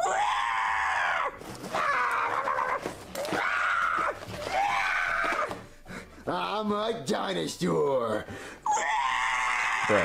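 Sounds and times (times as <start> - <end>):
dinosaur screeching roars: 8.8 - 10.0.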